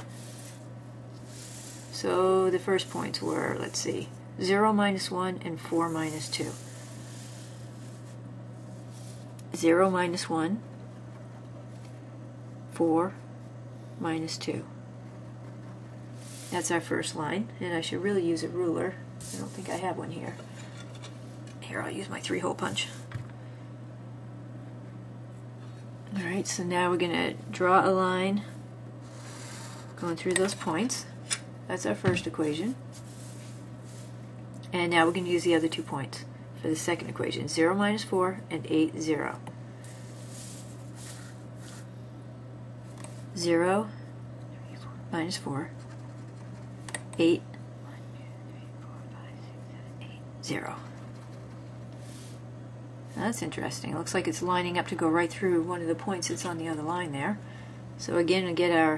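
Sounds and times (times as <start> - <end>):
low electrical hum: 0.0 - 58.9
marker scratching paper: 5.6 - 8.2, 29.0 - 30.0.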